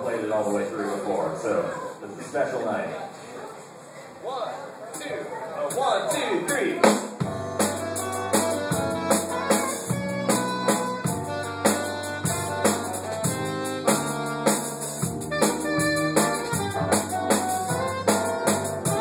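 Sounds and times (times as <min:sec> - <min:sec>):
drum kit: 0:05.7 - 0:19.0
keyboard: 0:07.1 - 0:19.0
electric bass notes: 0:07.2 - 0:19.0
saxophone: 0:07.2 - 0:19.0.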